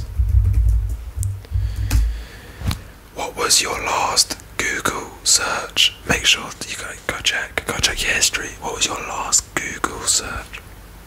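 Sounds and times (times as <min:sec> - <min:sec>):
man whispering: 0:03.1 - 0:10.6.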